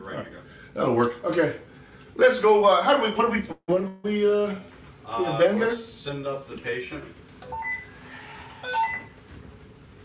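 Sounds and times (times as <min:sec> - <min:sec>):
low room noise: 0:00.0 - 0:10.0
electronic beeps: 0:08.6 - 0:09.1.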